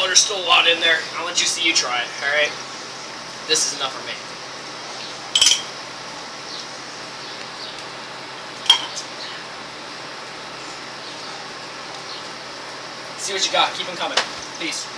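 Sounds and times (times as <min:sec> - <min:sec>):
steady hiss: 0:00.0 - 0:14.9
glass clinking on ledge: 0:05.4 - 0:05.7, 0:08.7 - 0:09.0
spoon clattering against cup: 0:05.4 - 0:05.7, 0:08.7 - 0:09.0.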